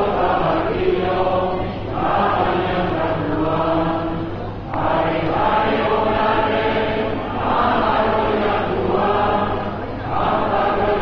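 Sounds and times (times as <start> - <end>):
crowd singing in unison: 0.0 - 11.0.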